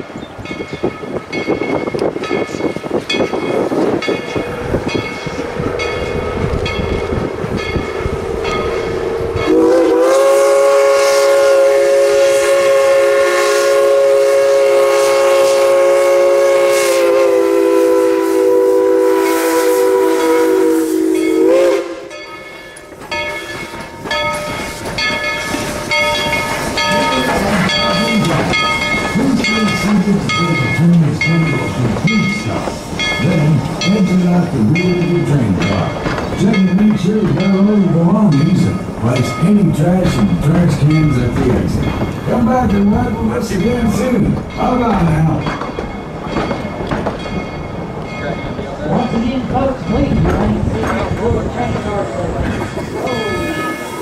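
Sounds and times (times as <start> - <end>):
train wheel clicks: 0.2 - 9.5, 22.1 - 54.0
steam exhaust chuffs: 4.4 - 22.1
steam whistle blast: 9.1 - 22.1.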